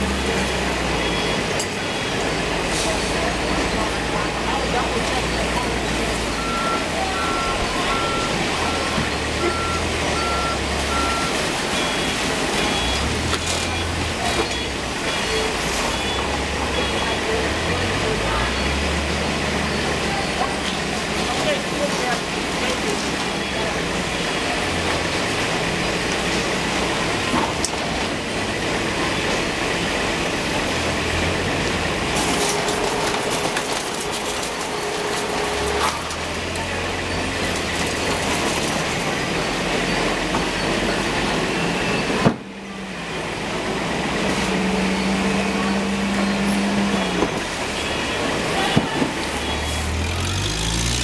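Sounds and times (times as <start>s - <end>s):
conveyor machinery din: 0.0s - 51.0s.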